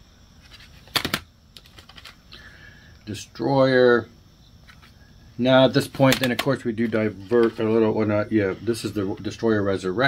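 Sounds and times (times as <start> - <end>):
plastic cd cases clacking: 0.5 - 2.2, 5.8 - 6.6.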